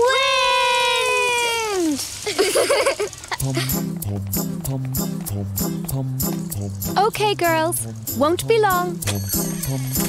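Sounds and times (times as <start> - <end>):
bouncy background music: 3.4 - 10.0.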